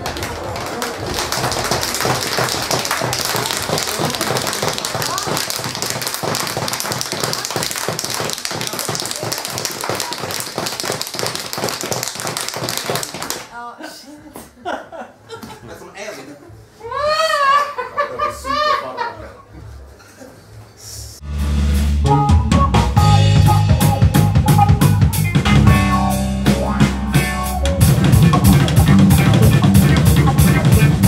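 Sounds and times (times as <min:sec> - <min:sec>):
applause: 0:00.0 - 0:13.5
laughter: 0:13.8 - 0:15.8, 0:17.0 - 0:20.4.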